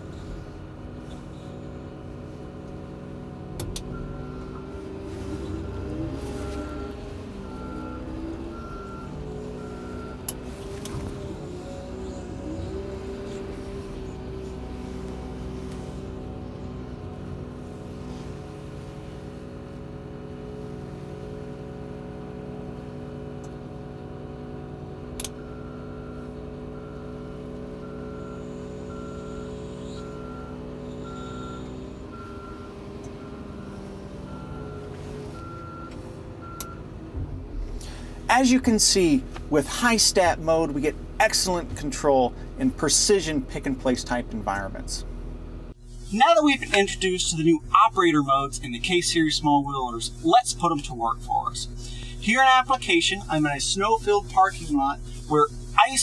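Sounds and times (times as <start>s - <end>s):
diesel engine running: 0.0s - 56.0s
reversing alarm beeps: 3.9s - 10.4s, 25.4s - 36.8s.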